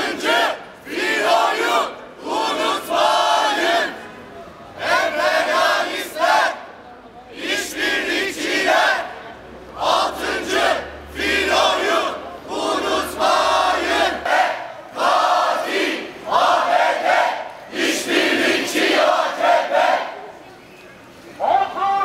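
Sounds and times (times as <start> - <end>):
crowd shouting slogans: 0.0 - 6.7, 7.3 - 20.4.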